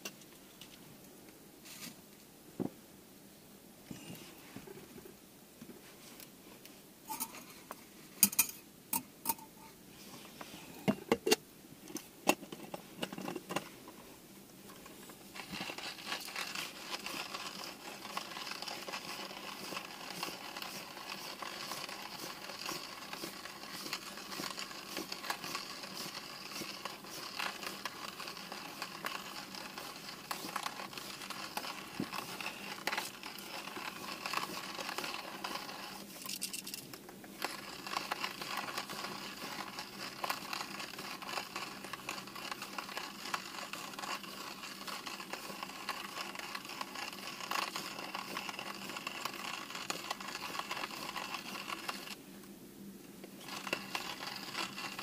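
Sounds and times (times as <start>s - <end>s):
hand coffee mill grinding beans: 14.7s - 52.2s, 53.4s - 55.0s.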